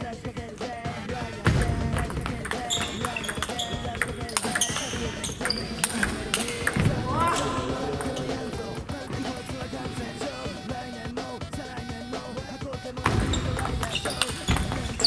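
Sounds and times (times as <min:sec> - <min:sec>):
shoe squeaks on wooden floor: 0:01.9 - 0:10.6, 0:13.0 - 0:15.0
ping pong ball clicking: 0:02.4 - 0:06.8.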